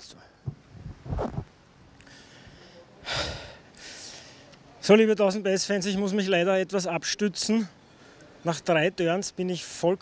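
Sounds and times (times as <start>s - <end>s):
man breathing hard: 2.0s - 4.5s.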